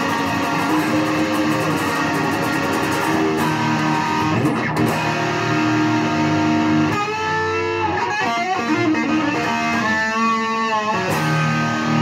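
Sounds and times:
guitar playing: 0:00.0 - 0:12.0.

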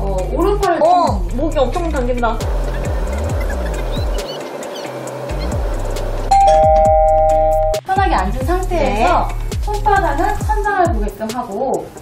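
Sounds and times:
background music: 0:00.0 - 0:12.0
two-note ding-dong chime: 0:06.3 - 0:07.8.

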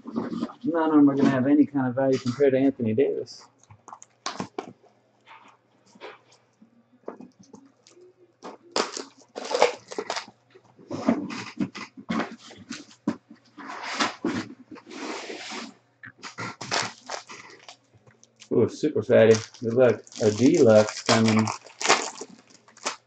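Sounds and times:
wrappers crinkling and tearing: 0:08.7 - 0:10.3, 0:16.2 - 0:18.6, 0:19.2 - 0:23.0.

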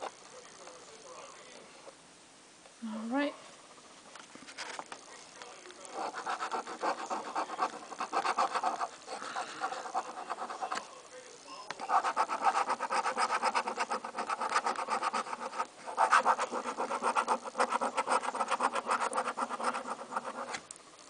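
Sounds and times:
coin scratching lottery ticket: 0:05.9 - 0:10.8, 0:11.8 - 0:20.6.

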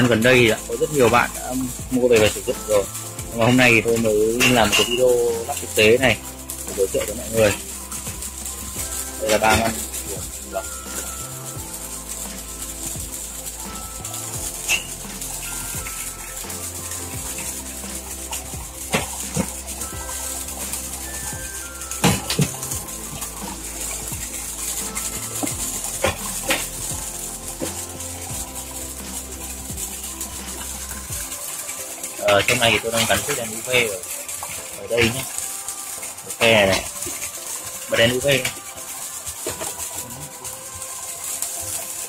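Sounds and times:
background music: 0:00.0 - 0:42.0
water flowing through filter: 0:00.0 - 0:42.0.

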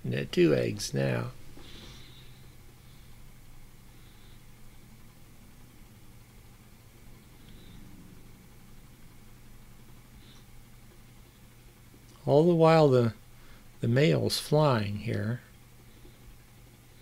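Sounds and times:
faint low hum with hiss: 0:00.0 - 0:17.0.

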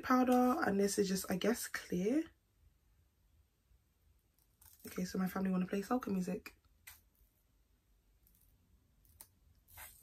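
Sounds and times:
speech: 0:00.0 - 0:02.4, 0:04.8 - 0:06.6.

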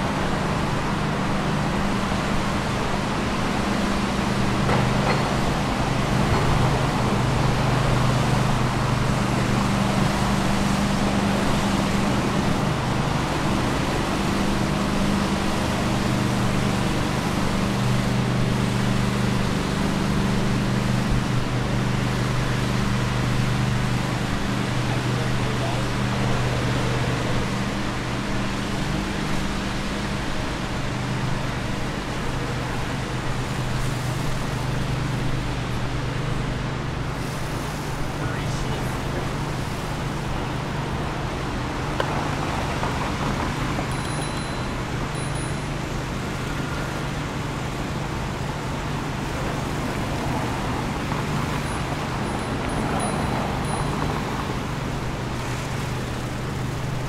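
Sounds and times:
road traffic noise: 0:00.0 - 0:57.0
cars passing: 0:37.5 - 0:57.0.

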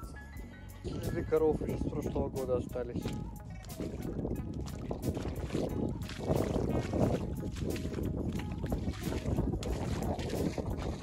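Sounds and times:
wind buffeting microphone: 0:00.8 - 0:11.0
boots squelching through mud: 0:03.0 - 0:11.0.

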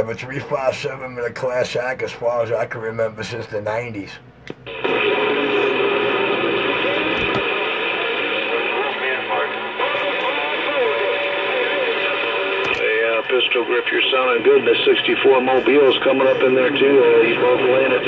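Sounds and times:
radio hiss: 0:02.5 - 0:18.0
garbled voice over radio: 0:04.8 - 0:18.0.

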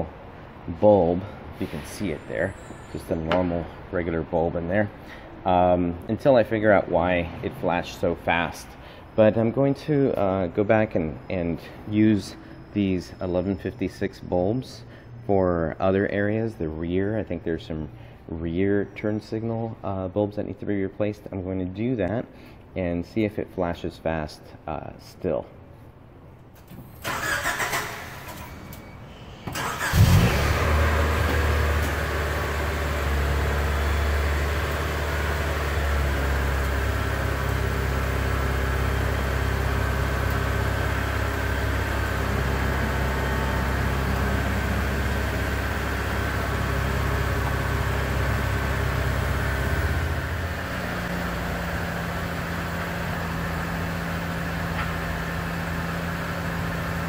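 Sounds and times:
car engine starting and idling: 0:26.6 - 0:57.0.

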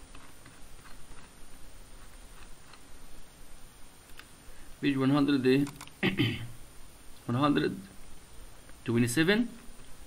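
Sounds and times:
steady low hiss: 0:00.0 - 0:10.0
faint irregular clicks: 0:04.0 - 0:04.4, 0:05.6 - 0:06.0.

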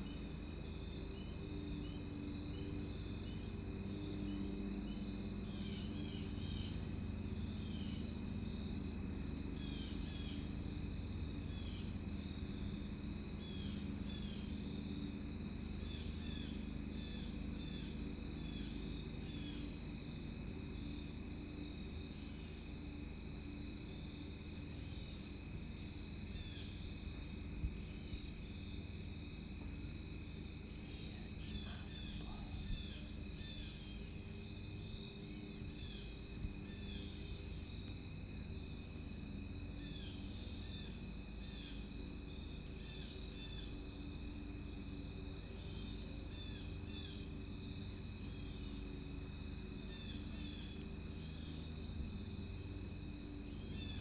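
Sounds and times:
crickets trilling: 0:00.0 - 0:54.0.

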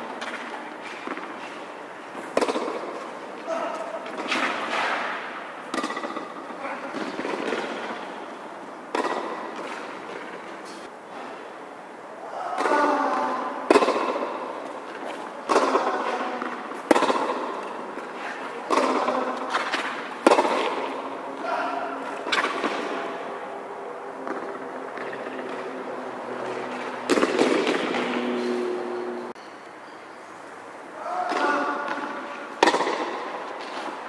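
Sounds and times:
tennis ball hits echoing: 0:02.3 - 0:03.0, 0:03.7 - 0:08.0, 0:08.9 - 0:10.4, 0:12.6 - 0:21.1, 0:26.7 - 0:28.3, 0:31.2 - 0:33.9.

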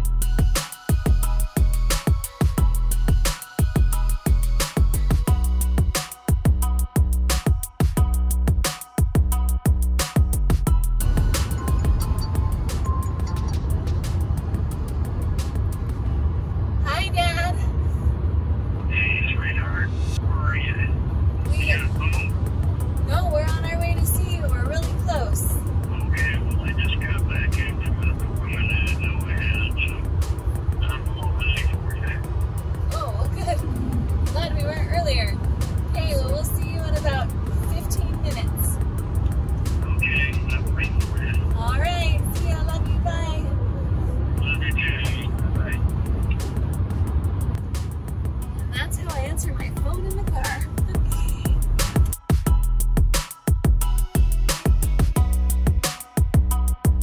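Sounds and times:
wind and road noise in car: 0:10.7 - 0:52.2
voices: 0:18.9 - 0:22.4, 0:23.0 - 0:30.0, 0:30.8 - 0:38.8, 0:39.8 - 0:46.5, 0:48.7 - 0:51.6.

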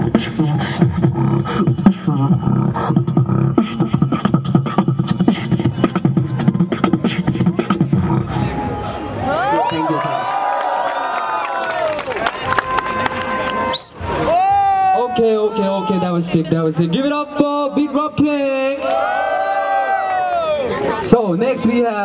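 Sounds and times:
beatboxing kick and snare clicks: 0:00.0 - 0:08.1
beatboxer pitched glides: 0:00.0 - 0:09.0
heavy bass: 0:00.0 - 0:09.4.

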